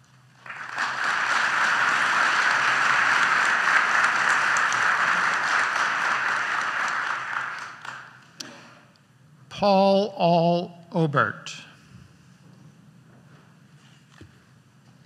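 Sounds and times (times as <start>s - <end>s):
audience applauding: 0.3s - 8.2s.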